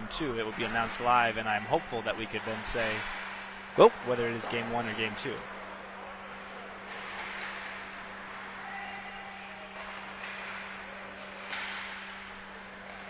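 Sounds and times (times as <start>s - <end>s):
hockey sticks knocking puck: 0.3s - 5.2s, 6.1s - 13.0s.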